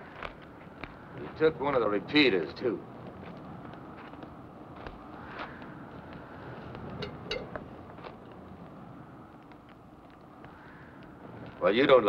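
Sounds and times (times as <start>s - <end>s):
campfire crackling: 0.0s - 12.0s
outdoor hiss: 0.0s - 12.0s.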